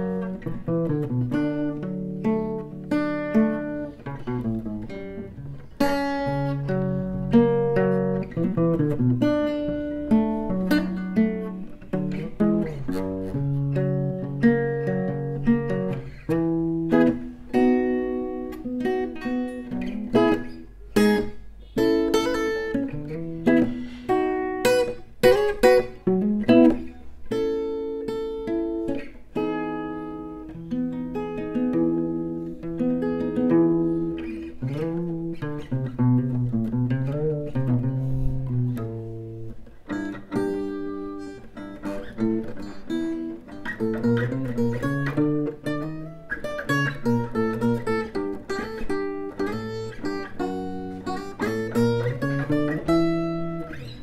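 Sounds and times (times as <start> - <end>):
acoustic guitar fingerstyle: 0.0 - 54.0
strummed guitar chords: 0.0 - 54.0.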